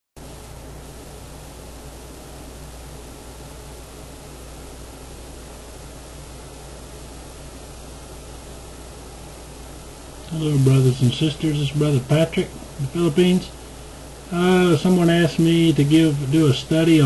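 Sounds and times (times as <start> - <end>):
low electrical hum: 0.2 - 17.0
microphone hiss: 0.2 - 17.0.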